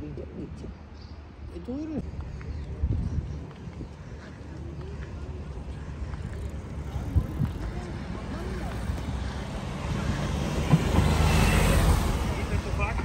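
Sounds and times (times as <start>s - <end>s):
faint voices of passers-by: 0.0s - 13.0s
car driving past: 6.8s - 13.0s.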